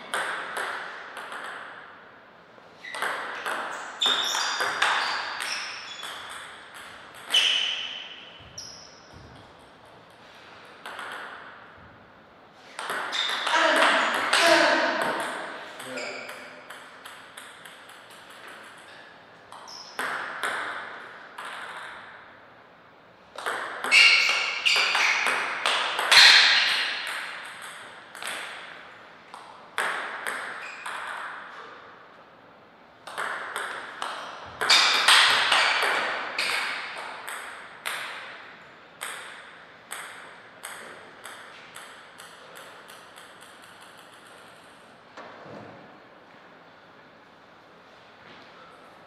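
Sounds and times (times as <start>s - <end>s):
table tennis ball clicking: 16.3s - 18.9s, 39.0s - 44.8s.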